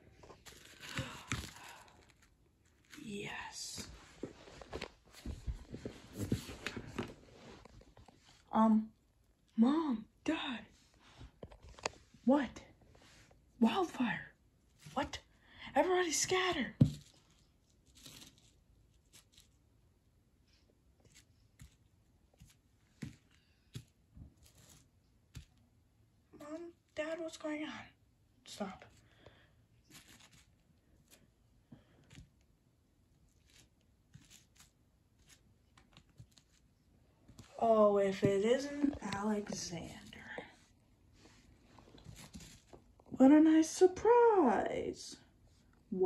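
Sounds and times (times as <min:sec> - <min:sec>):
soft breath: 0:28.9 - 0:30.2.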